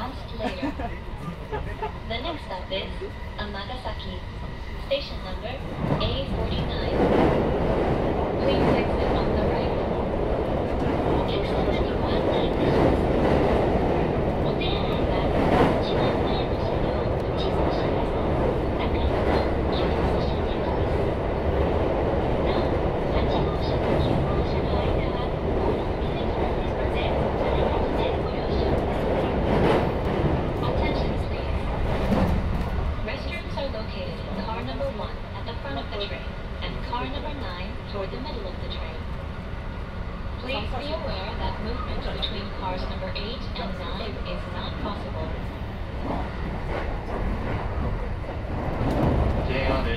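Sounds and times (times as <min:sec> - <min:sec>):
train rumble: 0:00.0 - 0:49.9.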